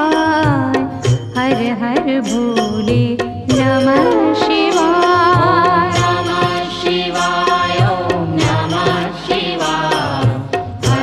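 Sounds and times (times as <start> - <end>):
drum beats: 3.5 - 7.0
person singing ornamented melody: 3.8 - 6.0.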